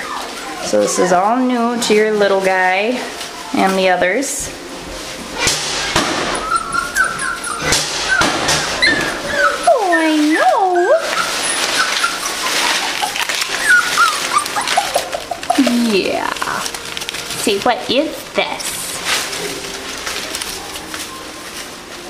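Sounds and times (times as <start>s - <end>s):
puppy whimpering: 0.0s - 2.2s, 5.8s - 17.0s
shredded paper rustling: 0.0s - 22.0s.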